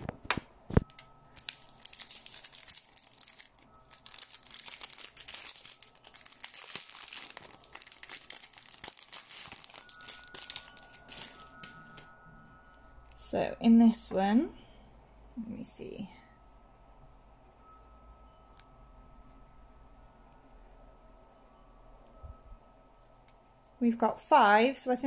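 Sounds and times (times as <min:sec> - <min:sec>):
plastic bag crinkling: 0:00.0 - 0:12.1.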